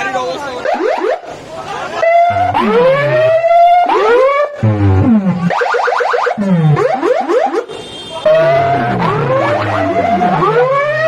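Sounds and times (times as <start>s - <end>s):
electronic siren-like sweeps: 0.6s - 1.3s, 2.0s - 7.7s, 8.3s - 11.0s
deep bass notes: 2.0s - 5.6s, 6.4s - 7.1s, 8.3s - 11.0s.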